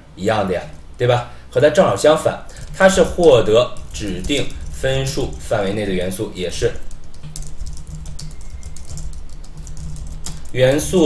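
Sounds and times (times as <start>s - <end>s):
keyboard typing: 2.5s - 11.0s.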